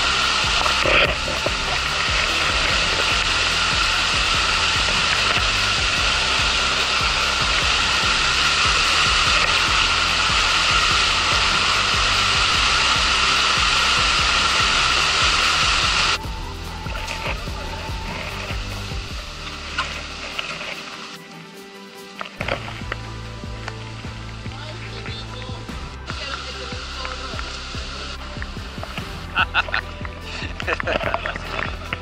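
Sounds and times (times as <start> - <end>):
water rushing over rocks: 0.0 - 32.0.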